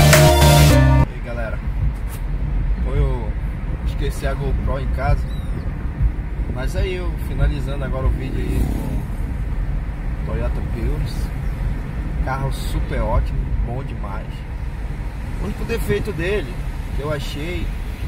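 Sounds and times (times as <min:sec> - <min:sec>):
road and tyre rumble in car: 0:01.0 - 0:18.0
indistinct voices: 0:06.4 - 0:09.5.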